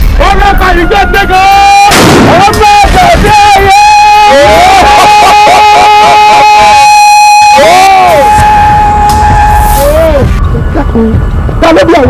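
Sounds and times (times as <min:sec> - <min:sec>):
drawn-out shout: 0:02.5 - 0:10.3
dramatic film music: 0:07.6 - 0:12.0.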